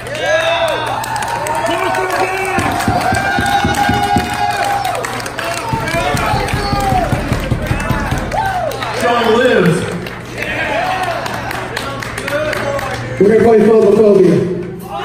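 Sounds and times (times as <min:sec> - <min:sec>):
rapid bass drum strokes: 0:02.6 - 0:04.5, 0:05.7 - 0:08.7.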